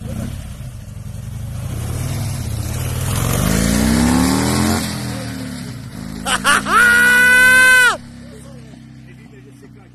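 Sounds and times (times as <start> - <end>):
motor trike engine accelerating: 0.0 - 9.9.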